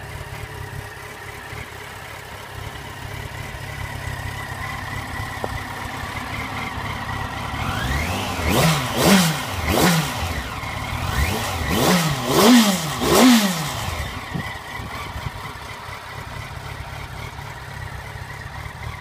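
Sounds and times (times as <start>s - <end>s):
motorcycle engine idling: 0.0s - 19.0s
motorcycle engine revving: 0.0s - 19.0s.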